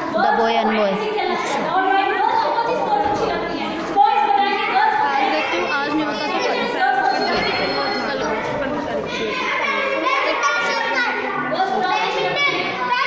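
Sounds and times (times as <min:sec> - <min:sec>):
children chattering: 0:00.0 - 0:13.0.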